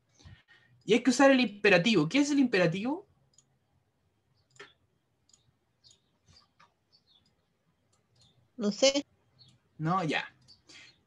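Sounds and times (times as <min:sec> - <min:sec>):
computer mouse clicks: 0:03.2 - 0:03.6, 0:04.3 - 0:08.5, 0:10.3 - 0:10.7.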